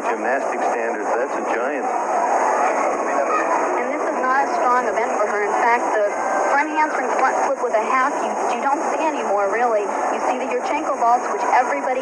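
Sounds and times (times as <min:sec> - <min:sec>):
muffled television voices talking: 0:00.0 - 0:12.0.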